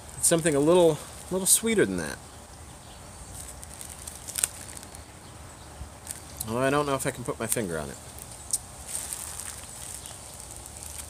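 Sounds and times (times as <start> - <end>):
quiet outdoor background: 0.0 - 11.0
plastic bag crinkling: 3.3 - 5.1, 6.0 - 6.4, 7.4 - 11.0.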